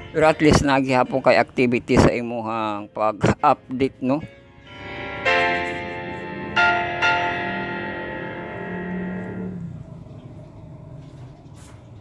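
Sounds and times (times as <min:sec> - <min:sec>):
sustained chord: 0:02.7 - 0:10.6
bell-like notes: 0:04.2 - 0:09.8.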